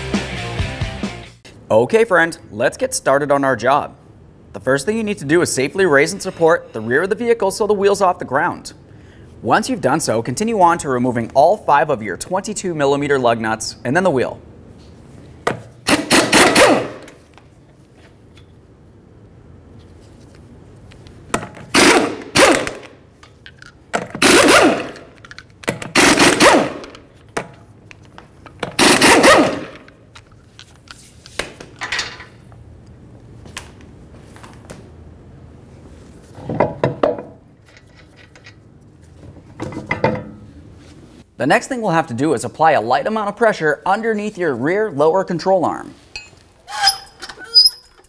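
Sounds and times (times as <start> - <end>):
impact gun hammering lug nuts: 15.5 - 17.2, 21.3 - 23.0, 23.9 - 27.6, 28.6 - 29.9.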